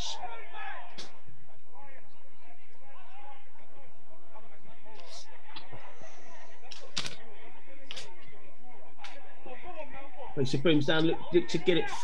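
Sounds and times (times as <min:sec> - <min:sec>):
indistinct voices talking: 0:00.0 - 0:12.0.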